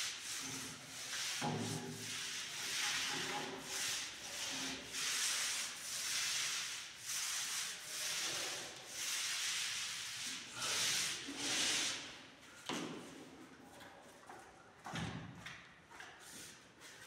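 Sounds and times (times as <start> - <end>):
paint roller hissing on wall: 0.0 - 13.4.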